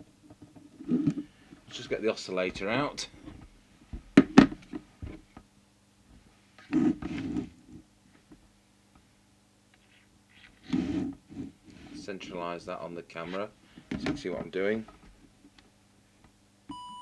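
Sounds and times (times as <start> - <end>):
rustling and shuffling: 0.0 - 5.4
faint steady hum: 0.0 - 17.0.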